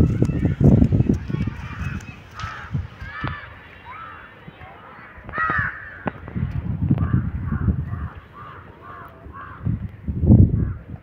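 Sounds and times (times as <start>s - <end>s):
crows cawing: 1.4s - 4.3s, 5.0s - 6.3s, 7.0s - 9.8s.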